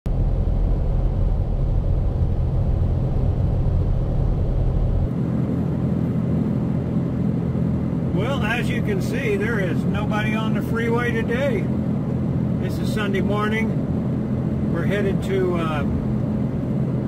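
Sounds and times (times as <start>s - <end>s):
road and engine rumble in cabin: 0.1s - 17.0s.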